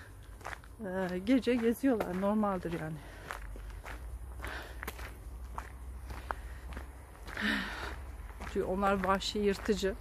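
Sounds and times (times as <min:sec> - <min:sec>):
footsteps walking: 0:00.0 - 0:10.0.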